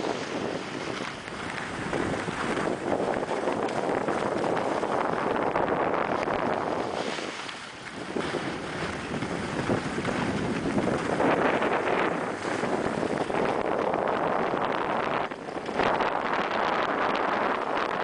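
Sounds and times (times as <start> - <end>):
skis scraping over snow: 0.0 - 18.0
wind on microphone: 0.0 - 18.0.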